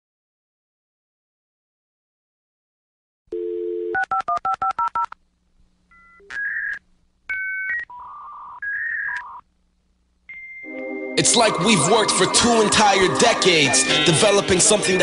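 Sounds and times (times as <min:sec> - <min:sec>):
telephone dial tone: 0:03.3 - 0:05.2
touch-tone dialing beeps: 0:03.3 - 0:05.2
electronic beeps: 0:06.0 - 0:09.4
steady high tone: 0:10.3 - 0:15.0.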